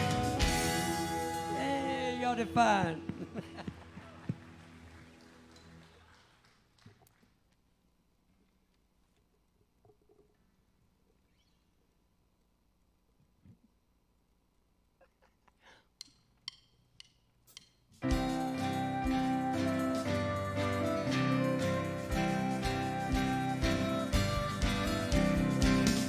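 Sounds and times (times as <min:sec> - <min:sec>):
band held chord: 0:00.0 - 0:03.6, 0:18.0 - 0:26.0
faint drumstick clicks: 0:16.0 - 0:18.0.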